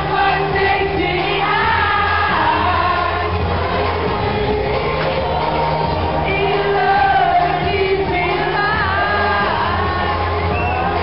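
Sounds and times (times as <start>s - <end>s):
pop-dance music through a pa: 0.0s - 11.0s
woman singing: 0.0s - 11.0s.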